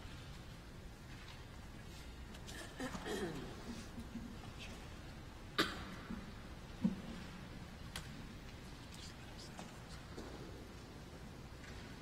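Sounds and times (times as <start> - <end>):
faint church room noise: 0.0 - 12.0
person coughing: 2.5 - 3.8, 5.6 - 6.0.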